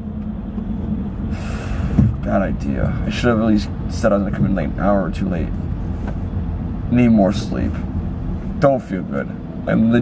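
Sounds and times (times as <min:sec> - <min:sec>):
car engine rumble: 0:00.0 - 0:10.0
road noise inside cabin: 0:00.0 - 0:10.0.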